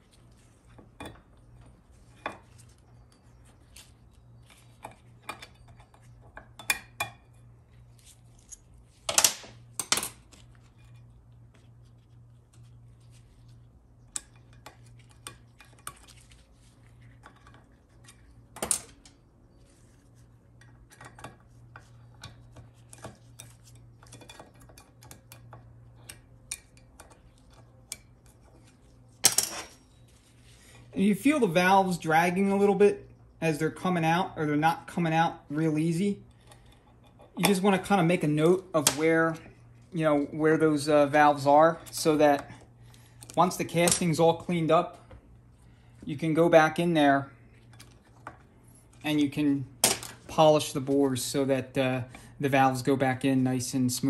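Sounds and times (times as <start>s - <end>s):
low steady hum: 0.0s - 54.0s.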